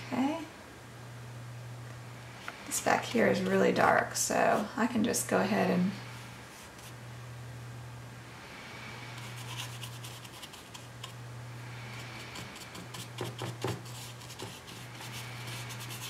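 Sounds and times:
steady low hum: 0:00.0 - 0:16.0
paintbrush scrubbing on paper: 0:09.2 - 0:11.1, 0:12.3 - 0:16.0.

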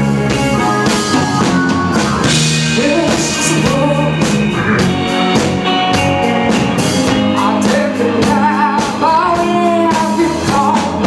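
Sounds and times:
bass guitar: 0:00.0 - 0:11.0
drum beat: 0:00.0 - 0:11.0
electric guitars: 0:00.0 - 0:11.0
woman singing lead vocal: 0:00.6 - 0:04.9, 0:07.4 - 0:11.0.

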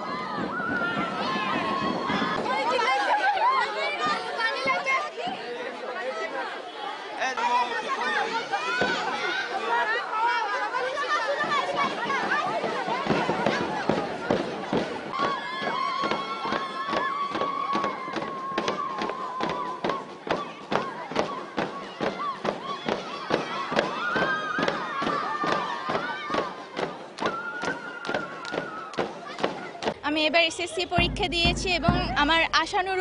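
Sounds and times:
girls chattering and calling out: 0:01.9 - 0:16.2, 0:29.0 - 0:33.0
barrel drum beating: 0:30.8 - 0:33.0.

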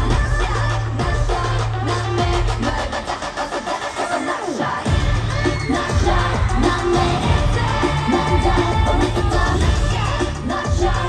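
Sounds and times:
dance track over sound system: 0:00.0 - 0:11.0
woman singing: 0:00.0 - 0:11.0.

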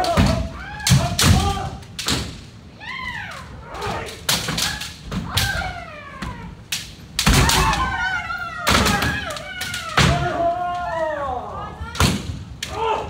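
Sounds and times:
people shouting: 0:00.0 - 0:01.9, 0:02.8 - 0:13.0.

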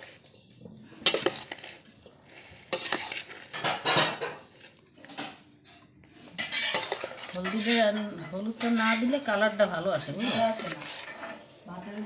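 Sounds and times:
metal spoon scraping a pan: 0:00.0 - 0:12.0.

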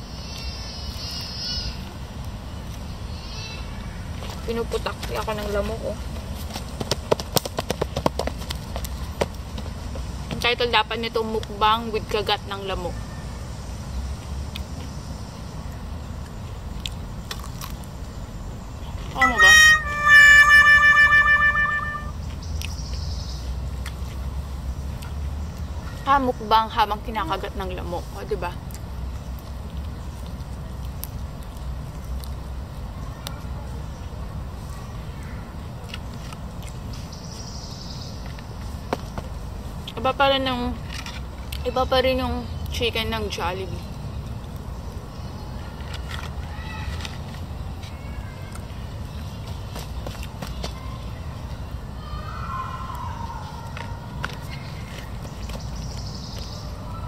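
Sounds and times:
eating sounds: 0:16.8 - 0:17.9
high gliding calls: 0:19.0 - 0:22.3
woman humming high note: 0:19.2 - 0:22.1.

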